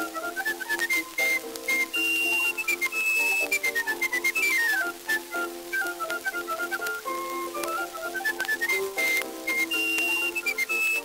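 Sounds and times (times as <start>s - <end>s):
instrumental accompaniment: 0.0s - 11.0s
whistled melody: 0.0s - 11.0s.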